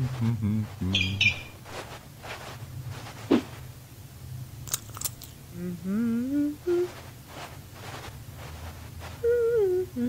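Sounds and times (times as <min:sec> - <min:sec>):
person humming: 0:00.0 - 0:01.4, 0:05.5 - 0:07.0, 0:09.2 - 0:10.0
soft hissy sounds: 0:00.0 - 0:10.0.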